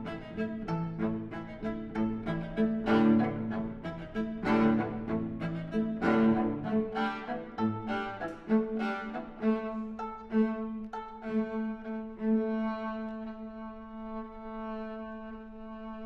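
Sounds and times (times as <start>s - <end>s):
viola and cello duet: 0.0s - 16.0s.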